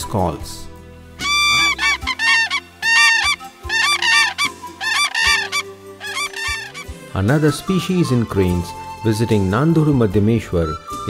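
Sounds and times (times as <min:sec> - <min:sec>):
soft background music: 0:00.0 - 0:11.0
cranes trumpeting calls: 0:01.2 - 0:06.8.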